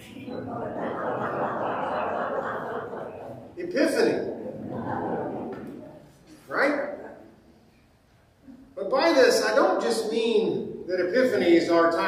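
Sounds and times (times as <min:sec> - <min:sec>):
crowd laughing and murmuring: 0:00.0 - 0:07.7.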